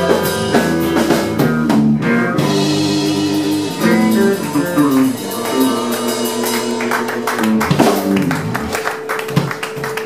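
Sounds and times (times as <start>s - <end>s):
blues-rock band playing: 0.0s - 10.0s
electric guitar note ringing: 2.4s - 10.0s
people clapping: 4.4s - 10.0s.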